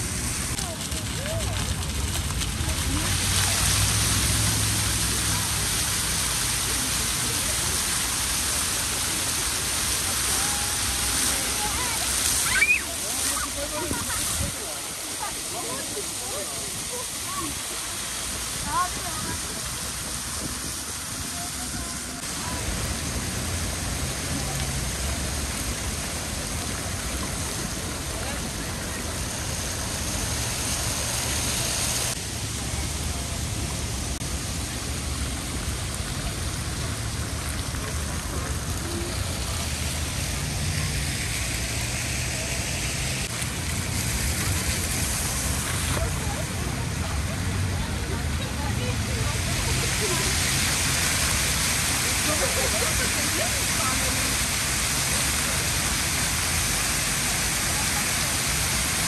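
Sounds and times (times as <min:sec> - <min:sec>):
fountain water splashing into pools: 0:00.0 - 0:59.0
voices in background: 0:00.4 - 0:22.7.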